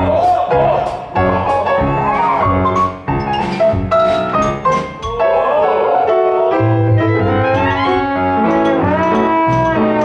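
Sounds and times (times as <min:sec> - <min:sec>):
pit orchestra playing: 0:00.0 - 0:10.0.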